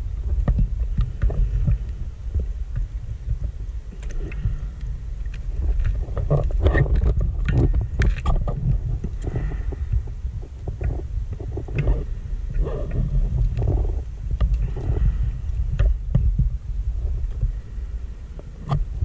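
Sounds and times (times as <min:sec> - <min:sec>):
low rumble of water movement: 0:00.0 - 0:19.0
irregular clicks and crackles: 0:00.1 - 0:19.0.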